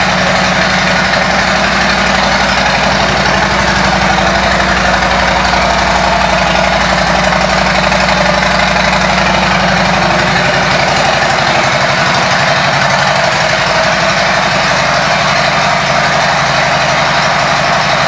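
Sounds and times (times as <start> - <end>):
motorcycle engine idling: 0.0 - 18.0.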